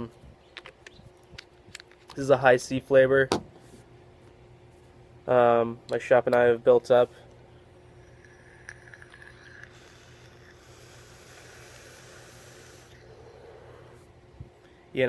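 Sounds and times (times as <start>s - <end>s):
faint hiss of air through vape: 9.2s - 14.1s.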